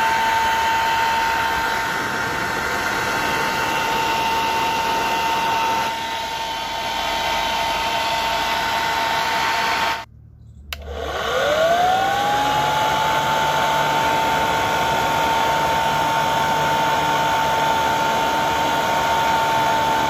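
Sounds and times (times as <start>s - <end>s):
blower fan motor whining: 0.0s - 10.1s, 10.7s - 20.0s.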